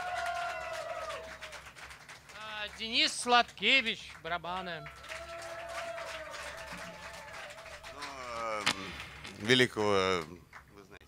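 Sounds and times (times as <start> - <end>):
scattered clapping: 0.0 - 11.0.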